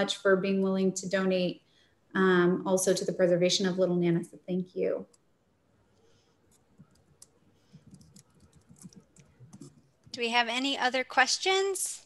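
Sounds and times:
keyboard typing: 6.5s - 10.2s.

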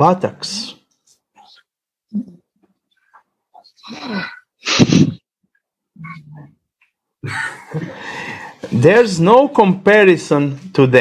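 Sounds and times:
person laughing: 7.2s - 8.1s.

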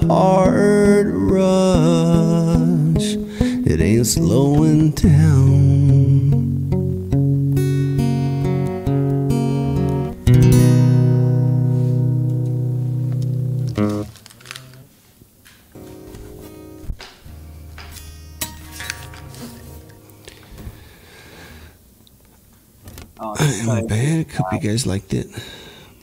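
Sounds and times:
plucked string chords ringing: 0.0s - 14.0s, 15.8s - 20.4s.

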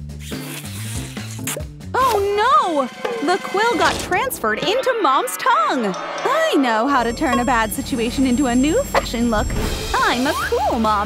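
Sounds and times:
background music: 0.0s - 11.0s
sucking through a straw: 0.2s - 1.6s.

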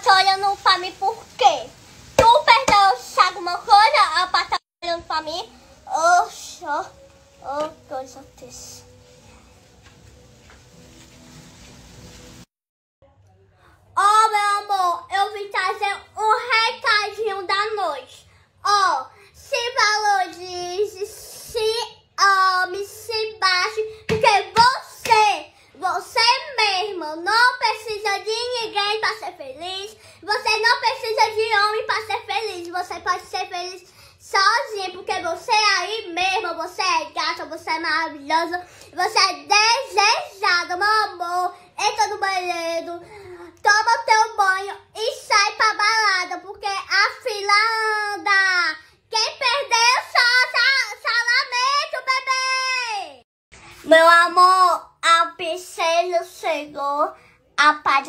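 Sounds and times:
girl singing wordless phrases: 0.0s - 9.0s, 14.0s - 53.2s, 53.8s - 58.0s.

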